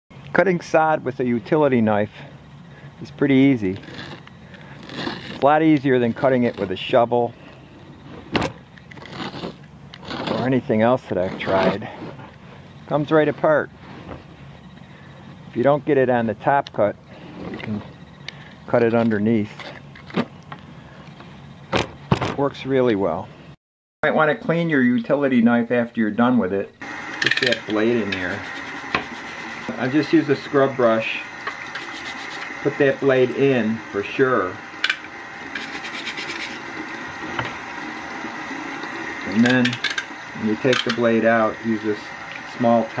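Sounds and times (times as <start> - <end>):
grass rustling: 2.7 - 15.6, 26.8 - 43.0
scrub brush scrubbing blade: 3.8 - 6.9, 8.9 - 12.1, 27.2 - 41.1
running tap water: 26.8 - 43.0.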